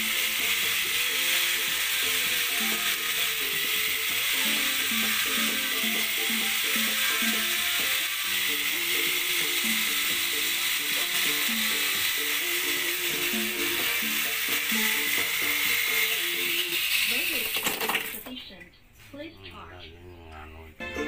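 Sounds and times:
background music: 0.0 - 17.4, 19.7 - 21.0
rotary grinder whine: 0.0 - 18.2.

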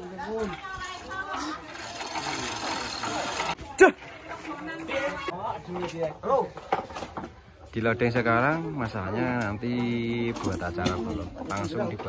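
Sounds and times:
chain hoist clattering: 1.3 - 3.6.

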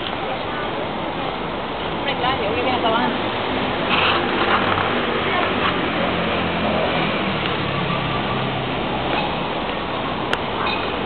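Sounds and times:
steady hum of traffic: 0.0 - 11.0.

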